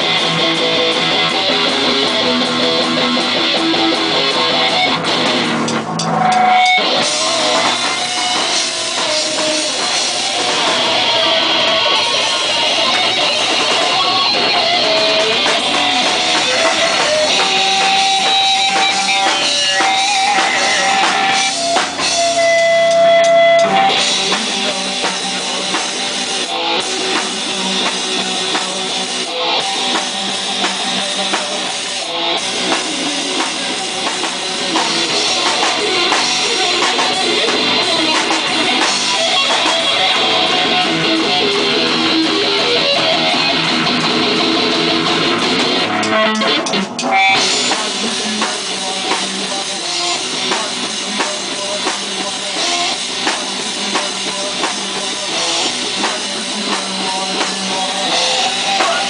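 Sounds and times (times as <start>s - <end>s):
bass guitar: 0.0s - 59.0s
drum kit beat: 0.0s - 59.0s
electric guitar: 0.0s - 59.0s
live rock band playing: 0.0s - 59.0s.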